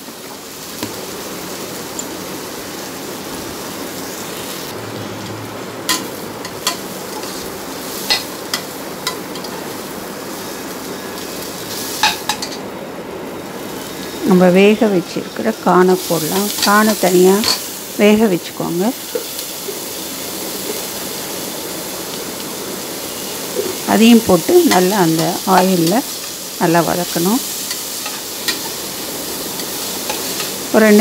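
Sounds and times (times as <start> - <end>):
onions sizzling in oil: 0.0 - 31.0.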